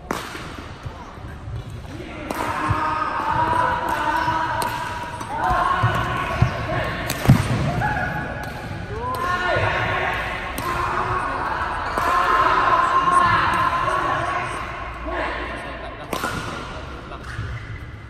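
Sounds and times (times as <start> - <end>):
rackets hitting shuttlecock: 0.0 - 13.8, 16.0 - 18.0.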